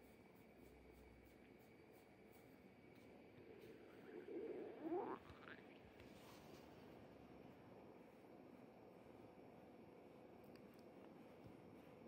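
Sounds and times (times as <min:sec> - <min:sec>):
stomach growling: 0:03.4 - 0:06.2.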